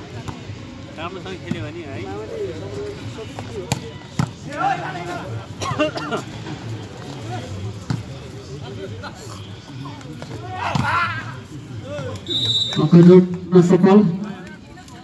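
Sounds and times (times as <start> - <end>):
people shouting: 10.4 - 12.2.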